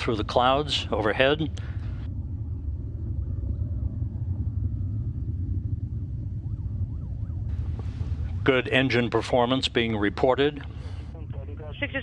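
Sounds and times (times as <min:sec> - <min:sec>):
rocket engines rumbling: 0:00.0 - 0:12.0.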